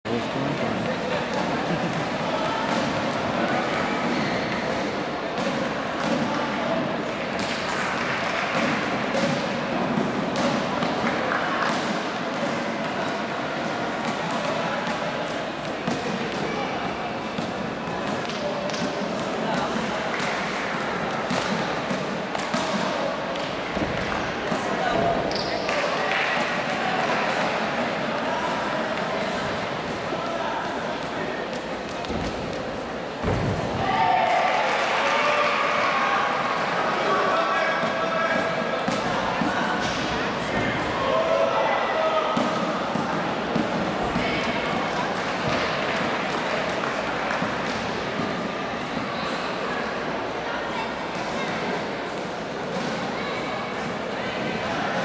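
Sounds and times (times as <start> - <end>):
indistinct chatter in a hall: 0.0 - 55.0.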